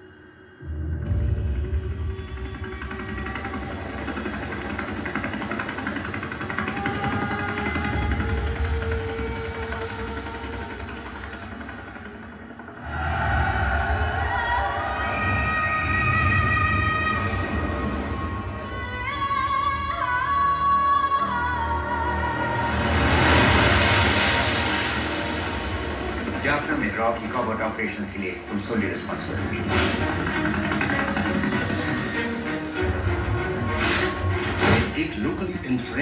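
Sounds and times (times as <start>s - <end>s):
dramatic music: 0.0s - 36.0s
heavy low rumble: 12.7s - 19.9s, 22.1s - 31.8s.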